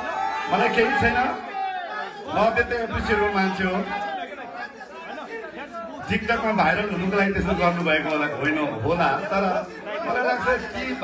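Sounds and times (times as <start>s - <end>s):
amplified speech: 0.0s - 11.0s
indistinct chatter in large hall: 0.0s - 11.0s.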